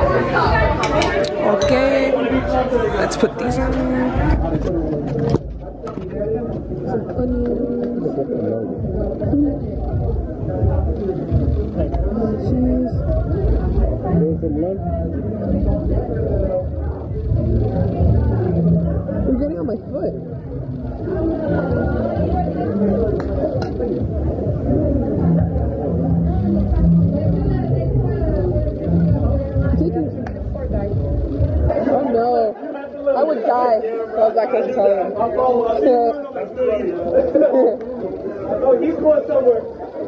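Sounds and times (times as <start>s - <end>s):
people chatting: 0.0s - 40.0s
people talking at once: 0.0s - 40.0s.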